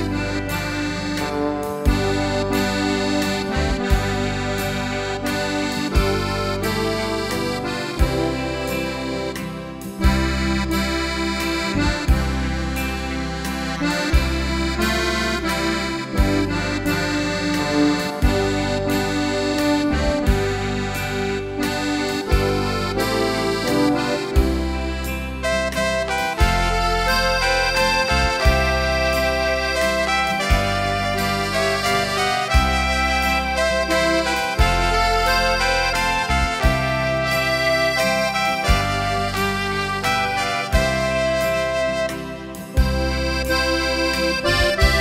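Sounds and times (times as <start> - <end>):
accordion chords and melody: 0.0 - 45.0
bass notes: 0.0 - 45.0.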